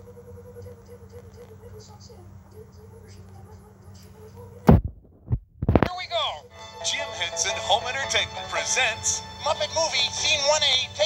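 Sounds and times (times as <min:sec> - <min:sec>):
steady low hum: 0:00.0 - 0:06.7
thumps from tv speaker: 0:04.7 - 0:05.9.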